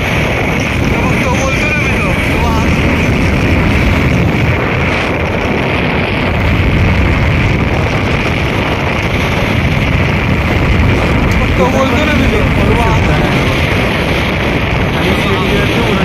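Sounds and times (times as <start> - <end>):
motorcycle engine and road noise: 0.0 - 16.0
wind on microphone: 0.0 - 16.0.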